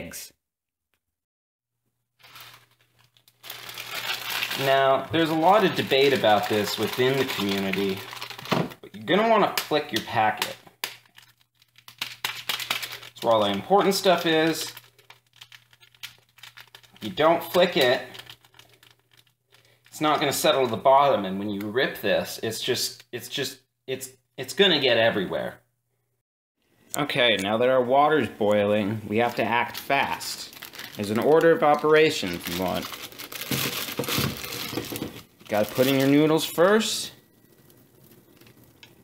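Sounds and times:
crinkling of packet: 2.2 - 20.9, 28.4 - 39.0.

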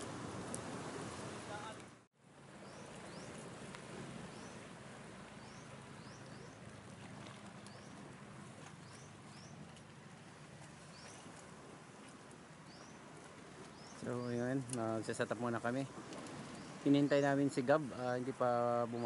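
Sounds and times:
gentle surf on rocks: 0.0 - 19.0.

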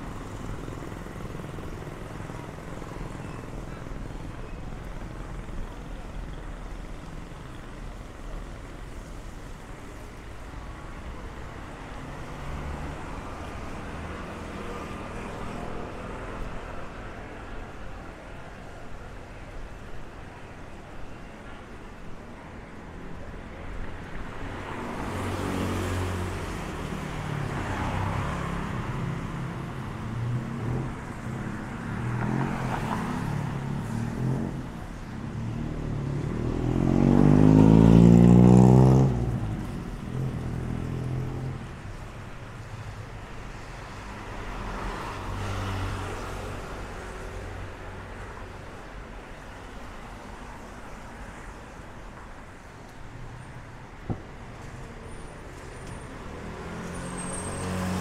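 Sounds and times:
vehicles passing: 0.0 - 58.0
engine accelerating past: 36.0 - 39.6.

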